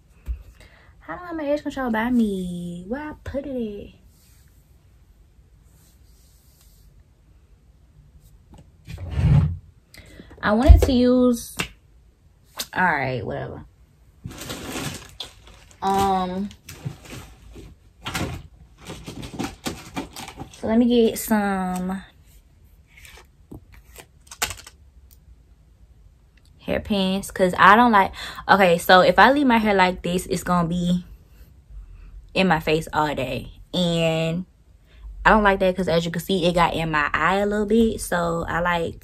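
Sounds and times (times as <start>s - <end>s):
small objects clicking and rustling: 24.2s - 24.8s.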